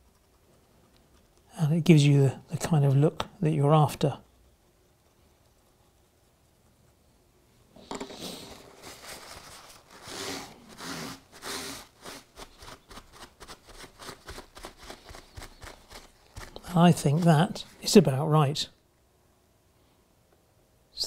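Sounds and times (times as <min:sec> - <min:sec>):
paper towel rubbing over track: 0:08.2 - 0:18.0.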